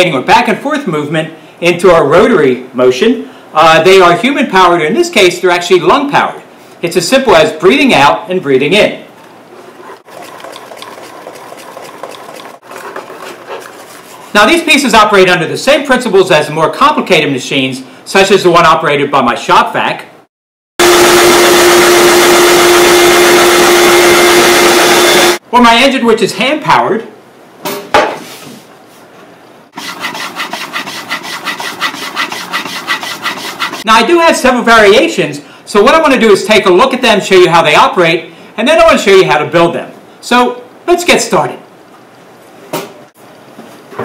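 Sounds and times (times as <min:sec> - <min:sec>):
wooden air engine rubbing strokes: 0:09.7 - 0:14.4, 0:29.7 - 0:33.9.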